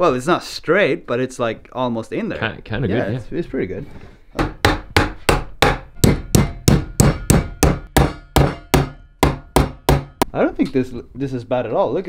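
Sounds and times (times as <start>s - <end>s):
hammer striking metal tool: 4.4s - 10.3s.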